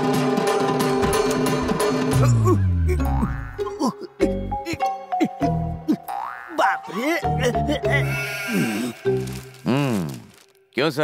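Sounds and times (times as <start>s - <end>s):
comedy background music with bass: 2.1s - 9.2s.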